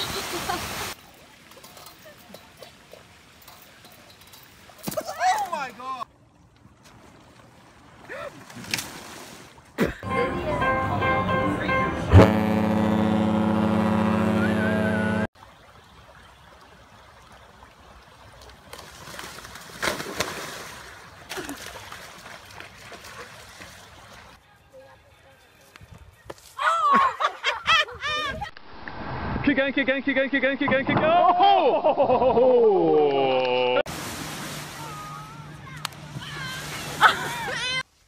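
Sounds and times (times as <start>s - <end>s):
music: 10.0s - 12.3s
ship horn low note: 10.0s - 15.3s.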